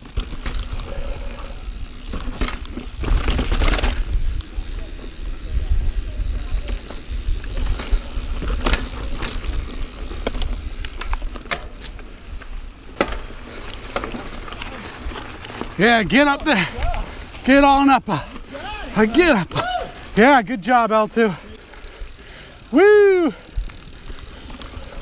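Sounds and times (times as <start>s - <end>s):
bike rattles and knocks: 0.0s - 20.0s, 23.4s - 25.0s
bike tyres rolling on dirt: 0.0s - 25.0s.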